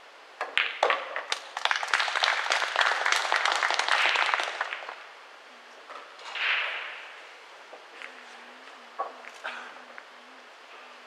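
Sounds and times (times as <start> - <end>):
audience applauding: 1.3 - 5.0.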